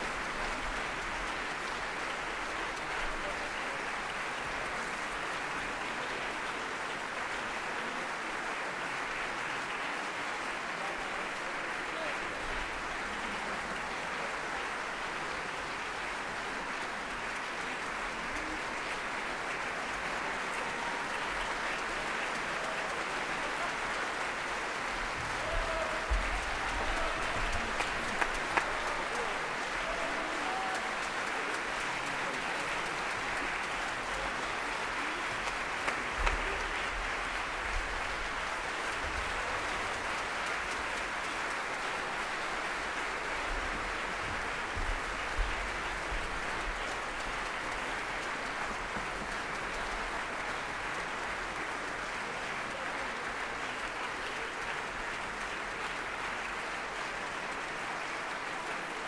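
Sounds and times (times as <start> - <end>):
audience applauding: 0.0 - 59.0.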